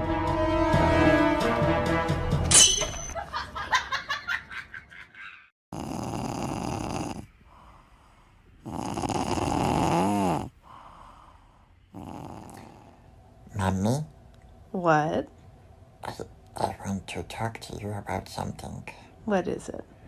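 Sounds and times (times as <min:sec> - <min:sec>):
cat snoring: 0:05.7 - 0:13.1.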